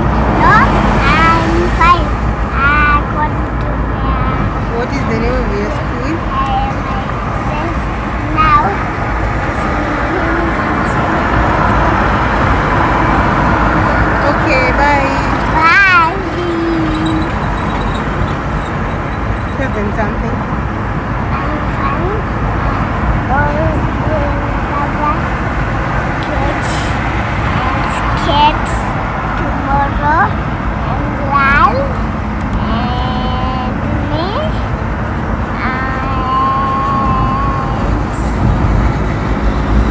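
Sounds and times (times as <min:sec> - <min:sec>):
car cabin road noise: 0:00.0 - 0:39.9
child's high sliding voice: 0:35.6 - 0:38.4.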